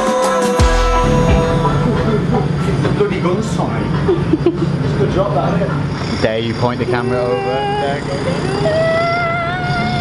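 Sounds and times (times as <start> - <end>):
steady low hum: 0.6 - 10.0
indistinct voices talking: 0.9 - 10.0.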